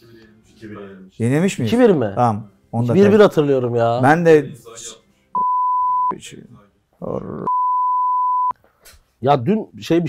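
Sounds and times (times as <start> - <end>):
person speaking: 2.8 - 4.8
censor bleep: 5.4 - 6.1, 7.5 - 8.6.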